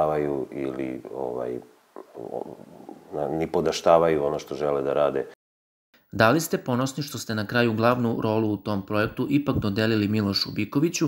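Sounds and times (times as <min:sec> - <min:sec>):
man speaking: 0:00.0 - 0:05.4, 0:06.1 - 0:11.0.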